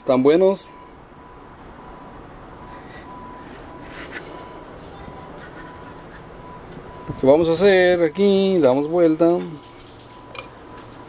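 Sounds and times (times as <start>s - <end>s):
circuit board rubbing on cloth: 3.5s - 4.4s, 5.3s - 6.3s.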